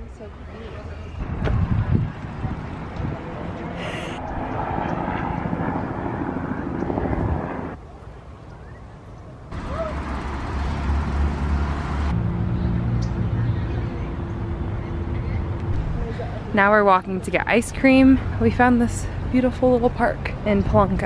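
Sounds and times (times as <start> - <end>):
distant traffic: 0.0 - 21.0
wind on microphone: 1.2 - 7.8.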